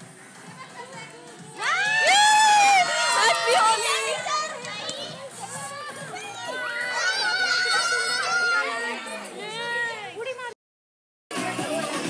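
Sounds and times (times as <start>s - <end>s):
children shouting excitedly: 1.6s - 10.2s.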